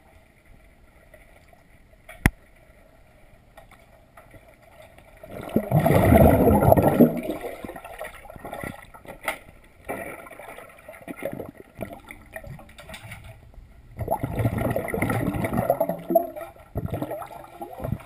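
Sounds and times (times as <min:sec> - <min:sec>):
underwater gurgling and sloshing: 0:00.0 - 0:18.0
rush of bubbling: 0:05.1 - 0:09.2, 0:09.8 - 0:18.0.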